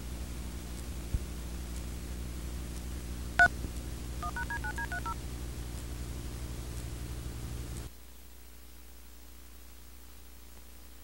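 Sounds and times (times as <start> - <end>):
mains hum: 0.0 - 11.0
tape hiss: 0.0 - 11.0
touch-tone beeps: 4.2 - 5.2.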